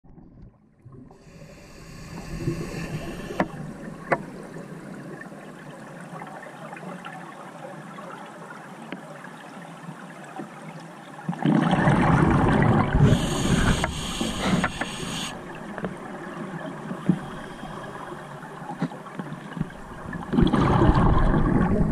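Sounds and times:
underwater crackling hiss: 1.2 - 4.6, 12.9 - 16.1, 16.8 - 18.5
sharp clicks: 13.5 - 15.3.

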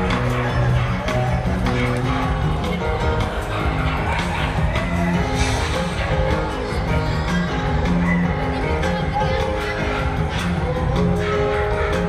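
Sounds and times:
live pop music: 0.0 - 12.0.

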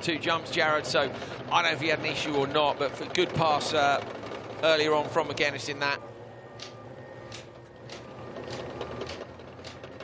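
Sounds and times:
car engine running low speed: 0.0 - 10.0
light engine ticks: 6.6 - 10.0.

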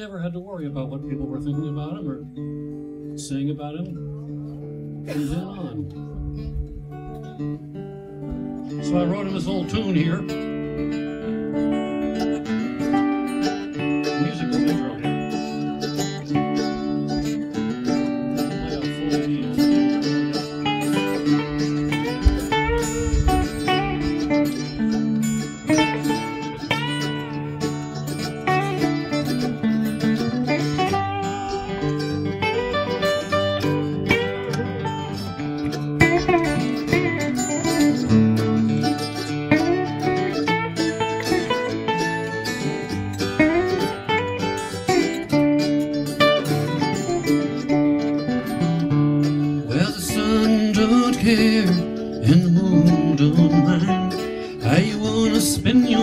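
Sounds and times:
acoustic guitar: 0.0 - 56.0
mandolin: 0.0 - 56.0
electric guitar: 0.7 - 56.0.

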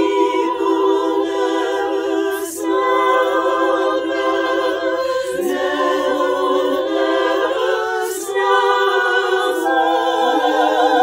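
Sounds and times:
women's choir singing a cappella: 0.0 - 11.0.

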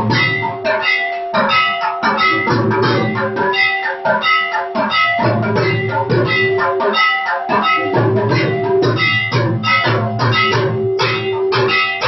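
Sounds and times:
held ringing tone: 0.0 - 12.0
metal bells and percussion: 0.0 - 12.0.

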